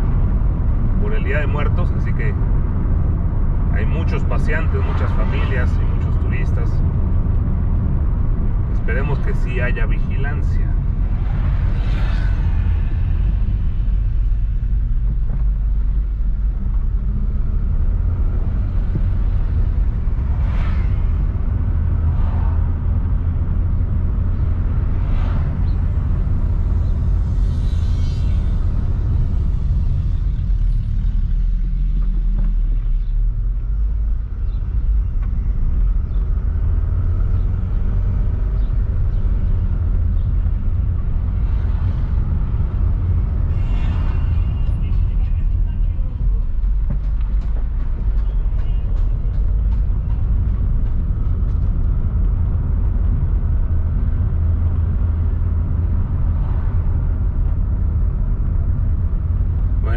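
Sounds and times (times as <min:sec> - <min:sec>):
car engine and road rumble: 0:00.0 - 0:59.9.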